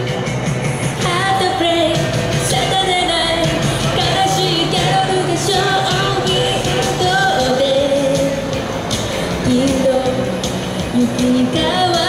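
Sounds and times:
recorded backing music: 0.0s - 12.0s
woman singing into microphone: 1.0s - 8.6s, 9.2s - 12.0s.

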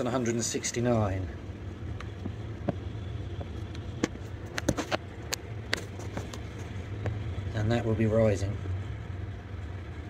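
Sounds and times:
sharp clicks and taps: 3.4s - 7.2s.

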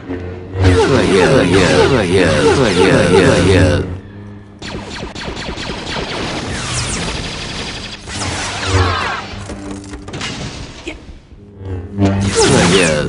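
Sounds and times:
lightsaber hums: 0.0s - 5.2s, 11.3s - 13.0s.

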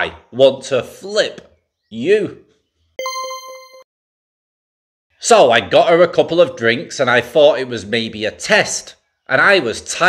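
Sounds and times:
bell-like ding: 3.0s - 3.9s.

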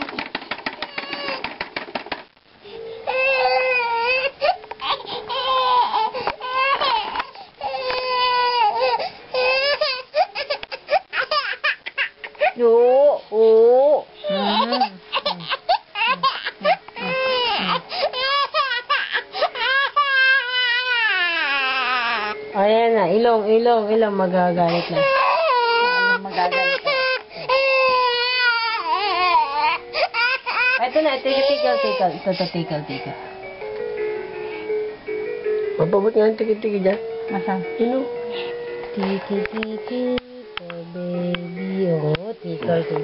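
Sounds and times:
baby crying: 0.8s - 1.6s, 2.8s - 12.7s, 14.2s - 22.4s, 24.6s - 32.6s.

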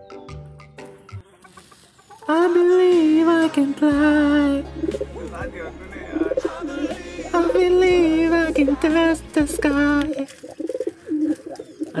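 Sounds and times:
pigeons cooing: 4.2s - 12.0s.

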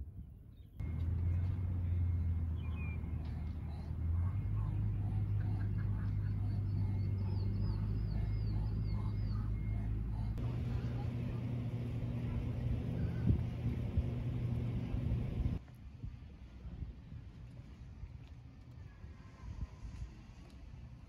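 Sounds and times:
low rumble: 0.8s - 15.6s.

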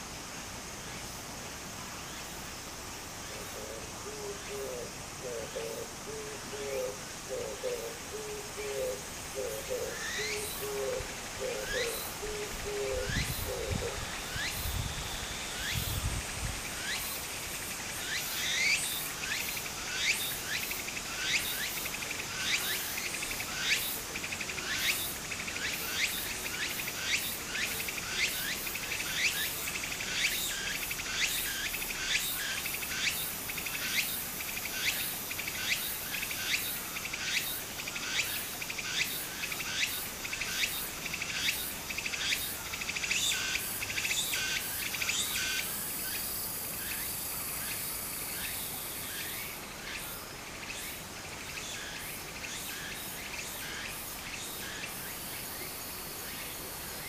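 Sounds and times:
cicadas calling: 0.0s - 57.0s.

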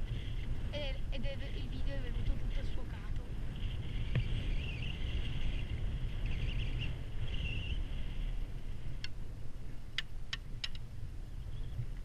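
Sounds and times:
low rumble of wind and chairlift: 0.0s - 12.0s
faint high squeaking: 3.6s - 8.3s
sharp clicks: 10.0s - 10.8s.

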